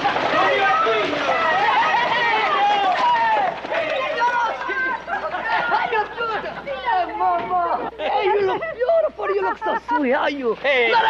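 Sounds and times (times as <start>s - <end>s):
voices calling out and talking: 0.0s - 11.0s.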